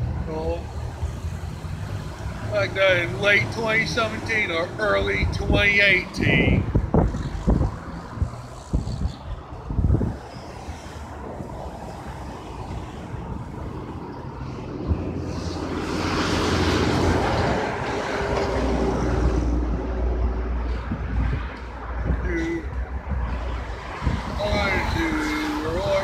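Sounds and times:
road traffic passing: 0.0 - 26.0
wind thumps on microphone: 5.2 - 12.0, 16.6 - 25.0.

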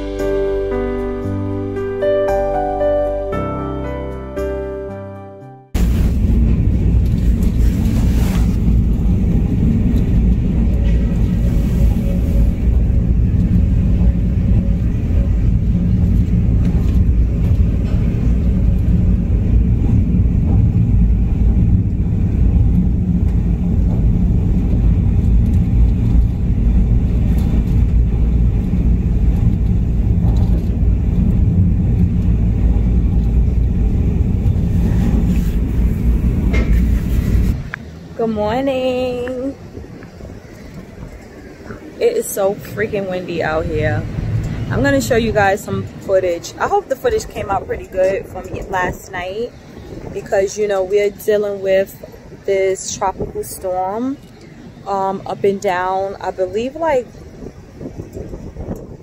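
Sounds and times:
wind blowing over microphone: 5.7 - 59.0.

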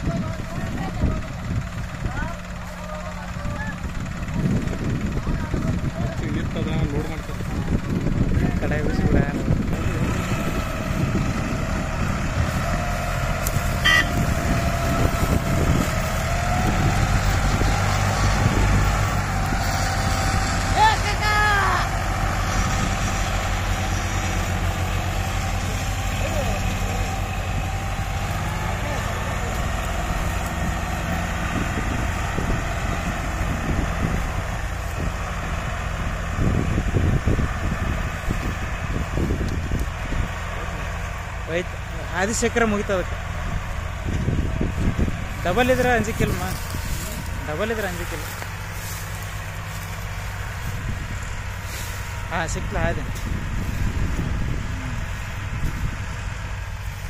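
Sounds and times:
voices calling out: 0.0 - 56.9
diesel tractor engines rumbling: 0.0 - 57.0.

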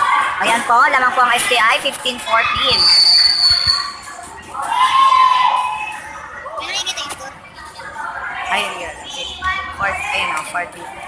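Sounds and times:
voices: 0.0 - 11.0
whistle blast: 2.7 - 4.0.

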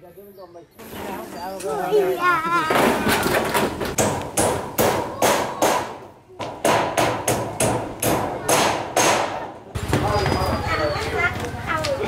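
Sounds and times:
hammer striking nails into metal: 3.9 - 9.4.

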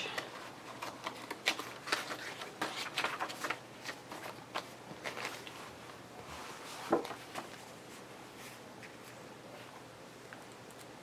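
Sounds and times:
paper pages rustling: 0.2 - 9.7.

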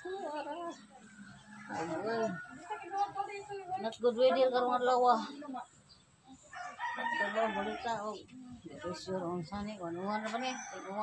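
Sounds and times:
rooster crowing: 6.5 - 8.0.

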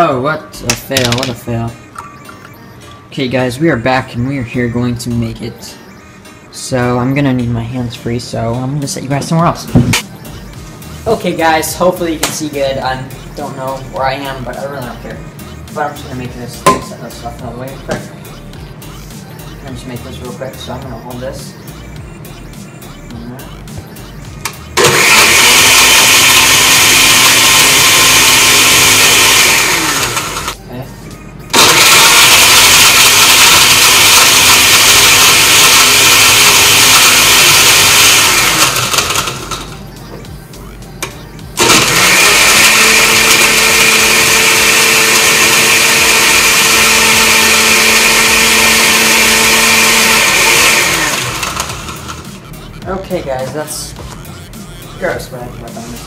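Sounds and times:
blender crushing ice: 24.8 - 30.6, 31.5 - 39.8, 41.6 - 52.3.

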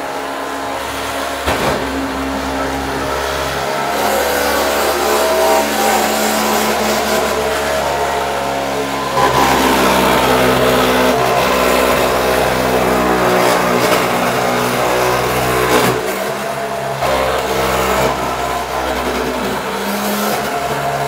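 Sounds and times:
blade scraping floor tiles: 0.0 - 21.0
floor stripper motor drone: 0.0 - 21.0.

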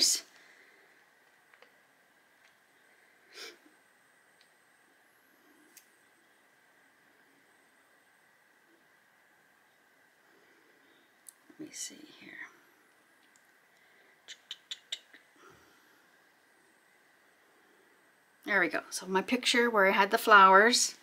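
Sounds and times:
faint high-pitched hum: 0.0 - 21.0.

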